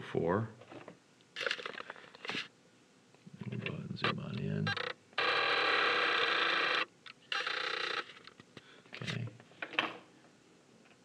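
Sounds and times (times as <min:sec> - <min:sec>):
zoom lens motor whirring: 0:04.7 - 0:08.4.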